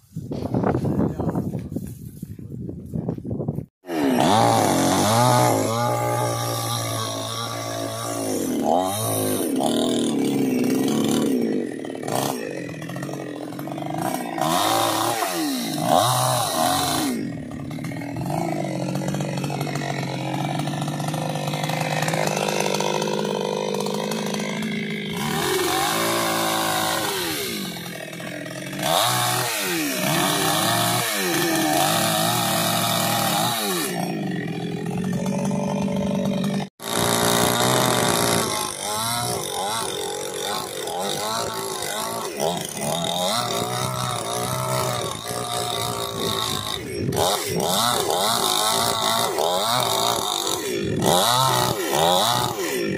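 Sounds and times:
chainsaw cutting branches: 3.8s - 52.9s.

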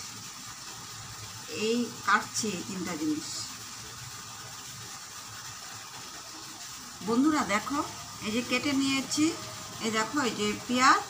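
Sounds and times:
background hiss: 0.0s - 11.0s.

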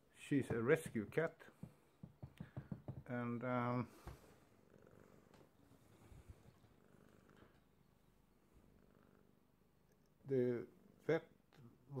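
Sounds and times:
cat purring: 3.9s - 11.1s.

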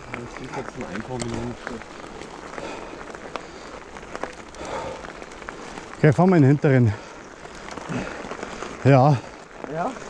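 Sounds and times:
bike tyres rolling on dirt: 0.0s - 10.0s.

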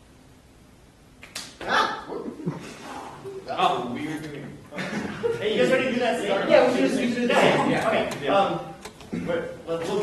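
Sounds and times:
person yelping like a dog: 1.6s - 2.3s.

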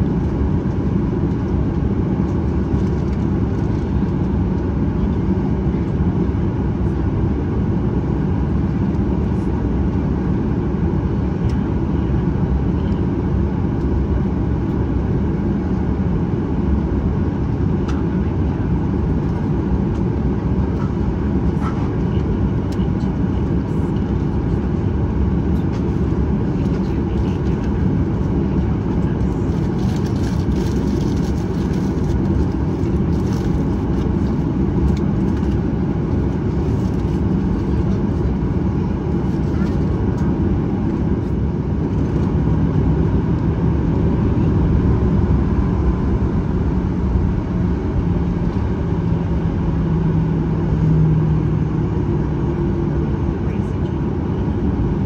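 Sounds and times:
jet engine rush from cabin: 0.0s - 55.0s.

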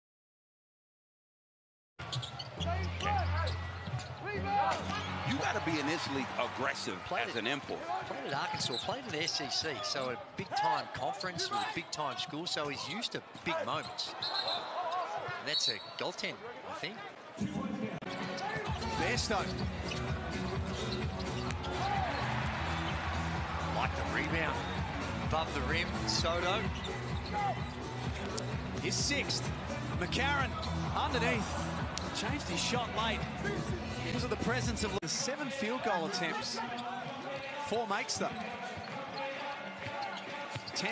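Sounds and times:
sneakers squeaking: 2.0s - 5.3s, 7.1s - 16.0s, 18.0s - 31.0s, 36.6s - 40.9s.

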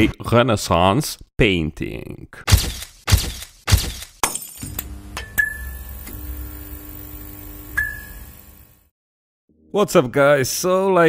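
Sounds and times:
electric hum and buzzing: 2.6s - 8.9s.

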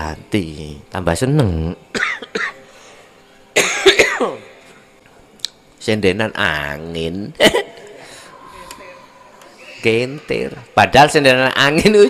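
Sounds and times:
person coughing: 2.0s - 2.6s, 3.6s - 4.4s, 7.4s - 7.8s.

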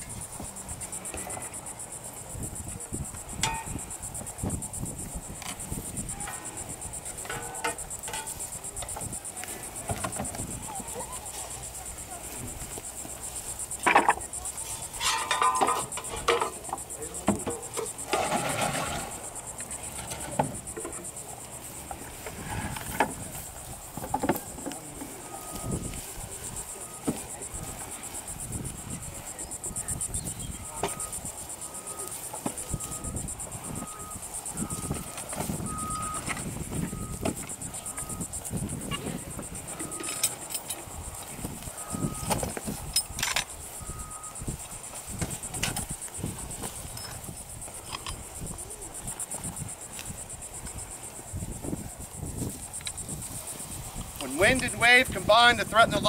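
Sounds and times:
insects droning: 0.0s - 56.0s.

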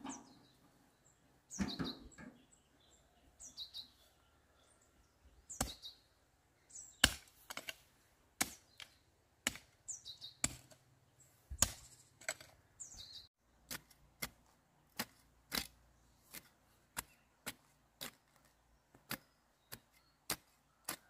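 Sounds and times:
hoe chopping into dry soil: 7.0s - 7.8s, 8.4s - 10.8s, 11.5s - 12.6s, 13.6s - 21.0s.

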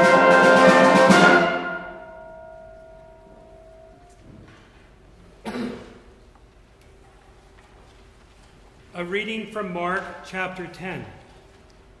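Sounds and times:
concert band final chord: 0.0s - 4.2s
cough: 5.4s - 6.1s.

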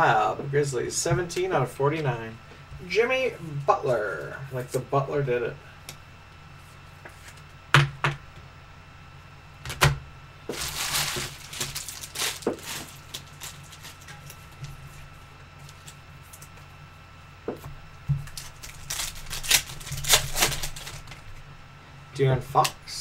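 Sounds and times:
wrapper crinkling and rustling: 10.5s - 16.6s, 18.2s - 21.4s.

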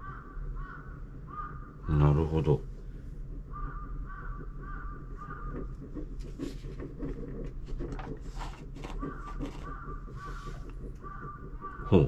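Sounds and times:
bird calling: 8.8s - 12.0s.

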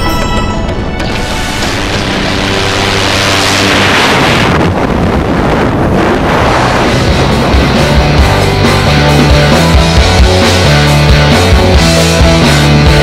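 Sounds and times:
background music: 0.0s - 4.5s, 6.3s - 13.0s
rushing wind: 0.6s - 12.0s.

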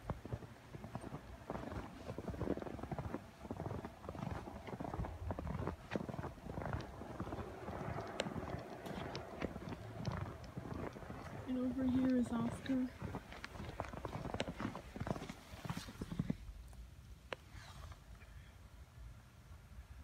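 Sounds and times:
footsteps crunching in snow: 0.0s - 16.5s.

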